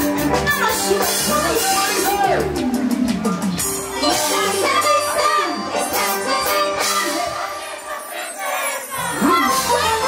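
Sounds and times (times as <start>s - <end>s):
band music: 0.0s - 10.0s
crowd shouting and cheering: 0.0s - 10.0s.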